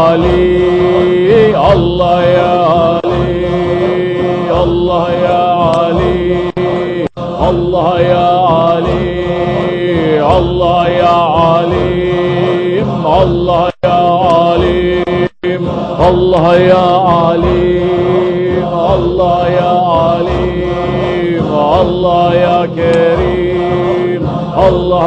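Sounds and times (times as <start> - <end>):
group voices droning: 0.0 - 25.0
person singing ornamented lines: 0.0 - 25.0.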